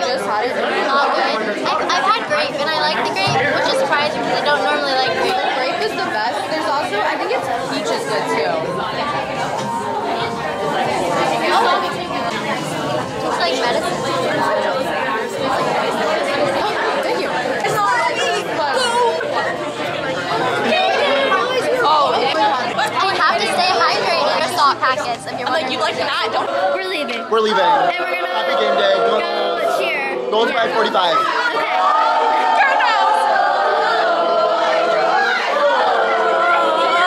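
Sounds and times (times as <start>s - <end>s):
crowd chatter: 0.0s - 37.0s.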